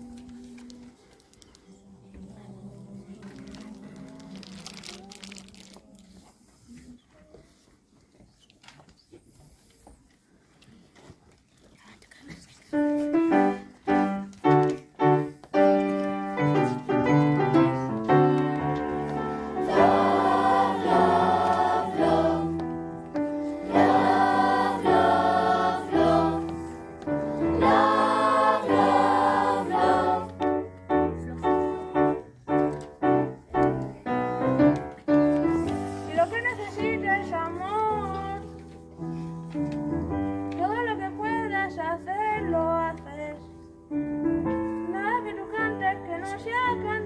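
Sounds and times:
paper rustling: 0.0s - 1.8s, 3.1s - 9.9s, 34.8s - 40.8s
piano accompaniment: 12.8s - 47.0s
children's choir singing: 15.8s - 30.7s.

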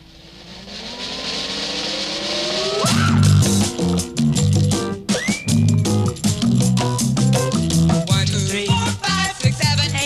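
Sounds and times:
cartoon whoosh with rising tones: 0.0s - 4.2s
funky music with heavy bass: 2.6s - 10.0s.

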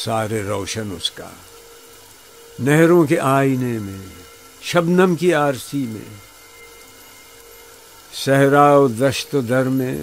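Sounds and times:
man reciting poem: 0.0s - 1.5s, 2.6s - 6.2s, 8.1s - 10.0s
faint hum and hiss: 0.0s - 10.0s.

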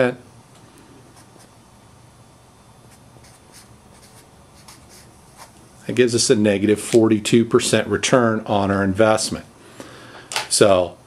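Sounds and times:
felt-tip marker writing on paper: 2.9s - 5.6s.

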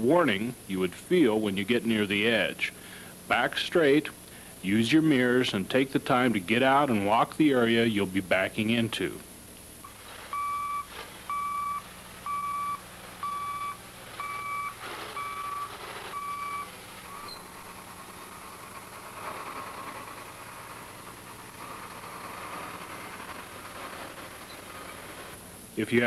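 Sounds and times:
back-up alarm beeping: 9.8s - 17.5s
heavy vehicle engine running: 9.8s - 26.0s.

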